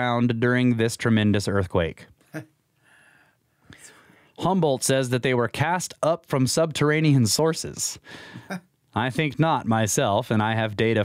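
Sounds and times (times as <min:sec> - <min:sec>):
breathing: 0:02.8 - 0:04.4, 0:08.0 - 0:08.6
soft inhale: 0:02.8 - 0:04.4, 0:08.0 - 0:08.6.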